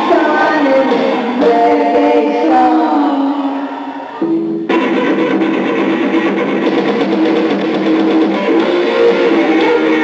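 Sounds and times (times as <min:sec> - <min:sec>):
bass guitar: 0:00.0 - 0:10.0
drums: 0:00.0 - 0:10.0
electric guitar: 0:00.0 - 0:10.0.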